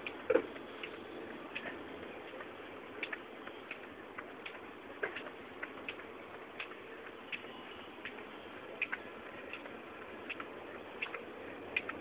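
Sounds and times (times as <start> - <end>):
skipping rope ticking on concrete: 0.0 - 12.0.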